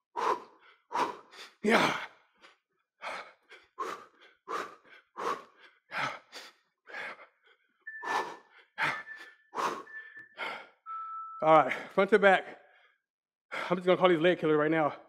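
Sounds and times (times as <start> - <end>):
man breathing hard: 0.1 - 10.8, 11.7 - 13.7
faint high tone: 7.9 - 11.9.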